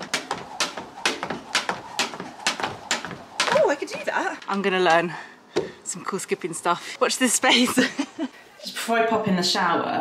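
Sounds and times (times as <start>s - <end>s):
jump rope slapping wooden decking: 0.0s - 5.7s.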